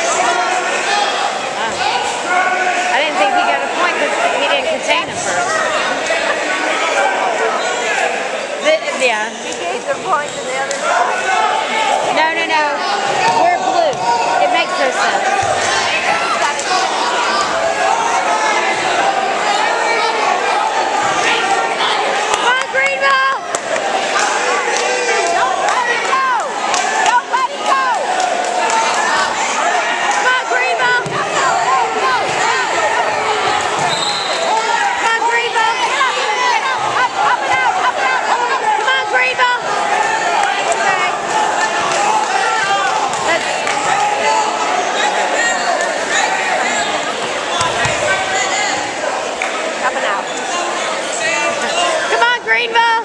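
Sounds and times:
crowd calling out: 0.0 - 53.0.

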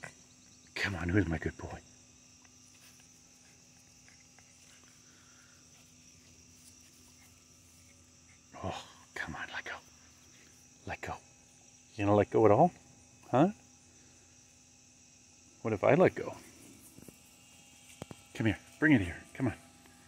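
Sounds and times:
crickets chirring: 0.0 - 20.0
quiet voice sounds: 8.5 - 11.3.

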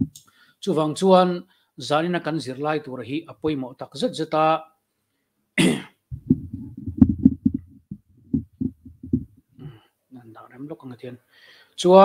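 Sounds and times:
person coughing: 5.6 - 6.0
microphone handling thumps: 6.1 - 9.7.

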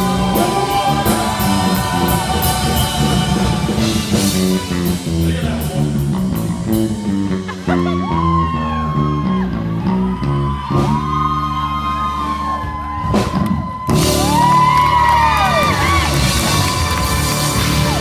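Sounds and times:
audience cheering and whooping: 0.0 - 4.6, 6.7 - 18.0
rock band playing live: 0.0 - 18.0.

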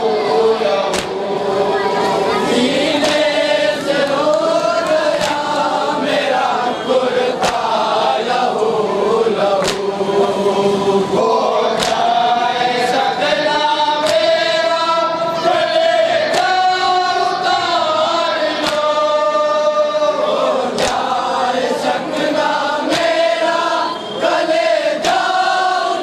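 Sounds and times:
men chanting a lament in unison: 0.0 - 26.0
chest-beating slaps: 0.8 - 1.3, 2.9 - 5.7, 7.4 - 8.0, 9.5 - 10.0, 11.7 - 12.2, 14.0 - 14.4, 18.5 - 19.0, 20.7 - 21.2, 22.8 - 23.3, 25.0 - 25.5.

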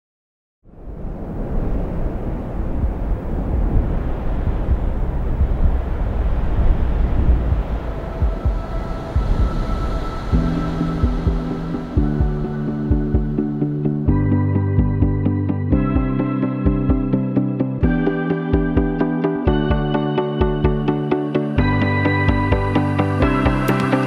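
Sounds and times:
low steady rumbling: 0.7 - 21.0
sustained music chord: 9.8 - 24.0.

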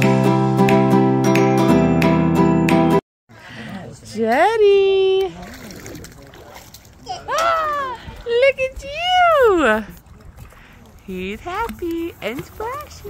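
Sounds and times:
water splashing in pool: 4.9 - 13.0.

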